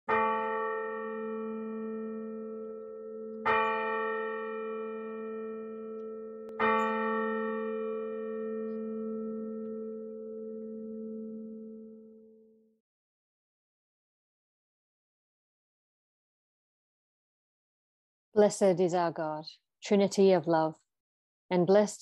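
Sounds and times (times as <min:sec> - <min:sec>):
bell ringing: 0:00.2 - 0:12.6.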